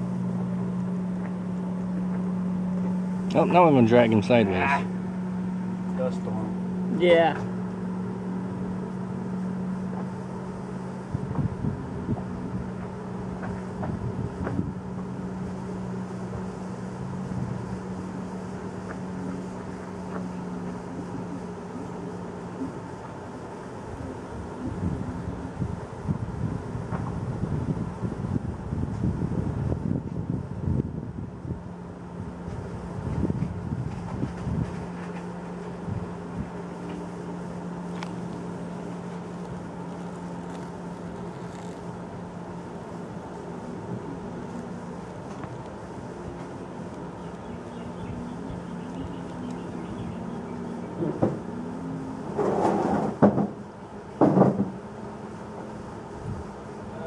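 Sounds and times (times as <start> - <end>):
low mechanical hum: 0.0 - 57.0
rumbling and crackle on microphone: 0.0 - 57.0.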